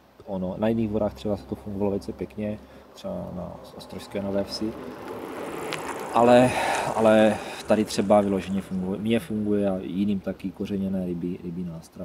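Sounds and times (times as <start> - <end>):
bicycle tyres on gravel: 0.6 - 11.1.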